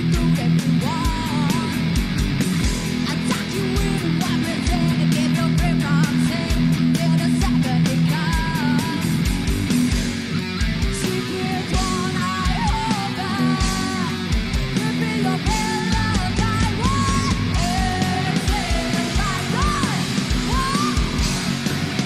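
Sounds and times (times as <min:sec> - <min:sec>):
bass riff: 0:00.0 - 0:22.0
distorted electric guitar riff: 0:00.0 - 0:22.0
drums with kick-drum beat: 0:00.0 - 0:22.0.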